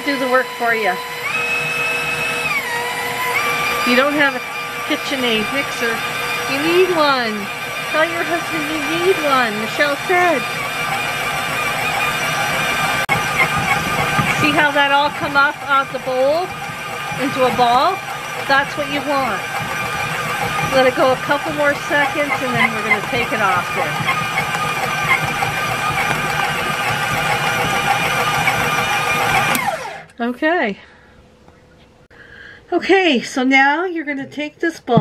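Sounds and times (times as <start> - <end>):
stand mixer kneading dough: 0.0 - 30.1.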